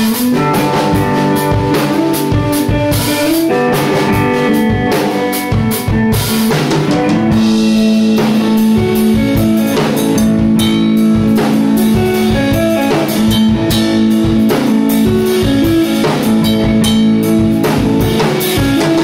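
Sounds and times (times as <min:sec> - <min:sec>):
drum kit: 0:00.0 - 0:19.0
electric guitar: 0:00.0 - 0:19.0.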